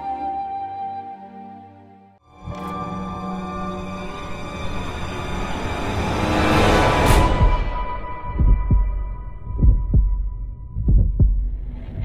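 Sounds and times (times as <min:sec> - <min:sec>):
heartbeat thumps: 0:07.1 - 0:12.0.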